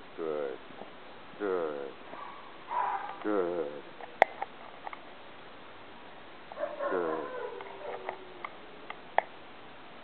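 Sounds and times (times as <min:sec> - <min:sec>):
dog whining: 0:06.6 - 0:08.8.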